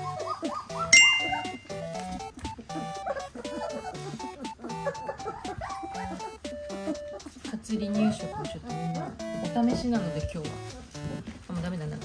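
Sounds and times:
light background music: 0.0 - 12.0
puppies whimpering and squeaking: 0.0 - 12.0
bright ringing chime: 1.0 - 1.8.

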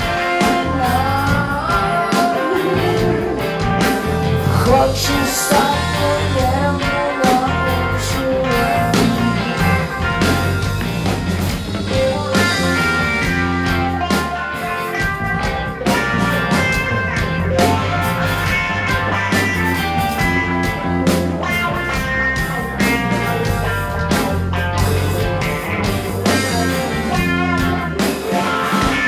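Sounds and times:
bass guitar: 0.0 - 29.0
drum kit: 0.0 - 29.0
electric guitar: 0.0 - 29.0.

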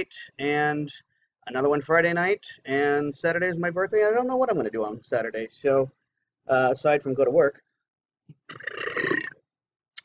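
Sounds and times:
man's throaty vocal sound: 8.4 - 9.4.

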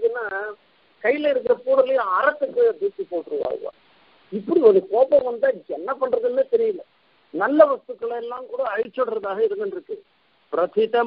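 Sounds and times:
man lecturing: 0.0 - 11.0.

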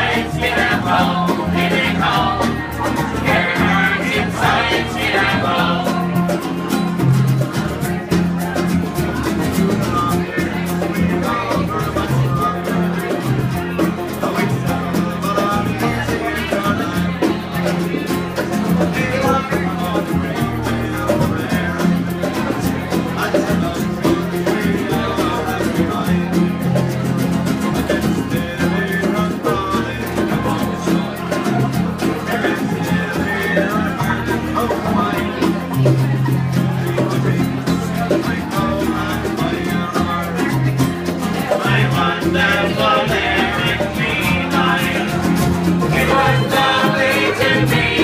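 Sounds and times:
acoustic guitars strumming folk music: 0.0 - 48.0.

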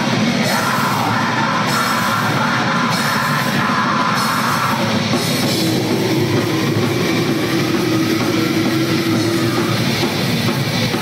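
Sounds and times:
distorted guitars: 0.0 - 11.0
fast dense drumming: 0.0 - 11.0.

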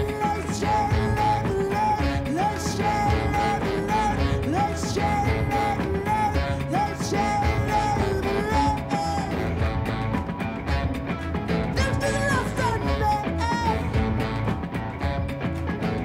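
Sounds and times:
band accompaniment: 0.0 - 16.0
electric guitar: 0.0 - 16.0
saxophones playing: 0.0 - 16.0.

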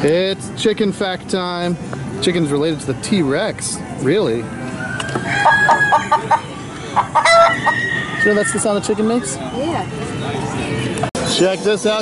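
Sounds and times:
recorded chicken clucking: 4.8 - 8.8.

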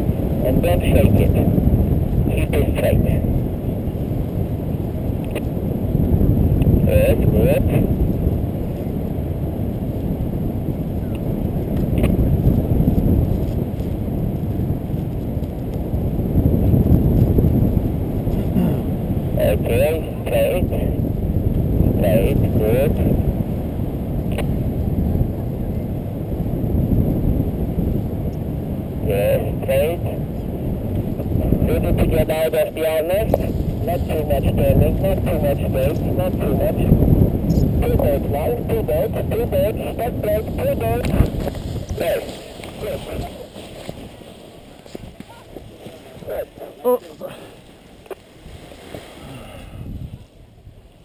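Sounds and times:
wind buffeting microphone: 0.0 - 51.0.

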